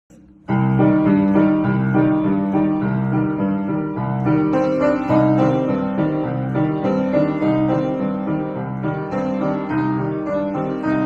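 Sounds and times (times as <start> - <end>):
piano-like keyboard music: 0.1 - 11.0.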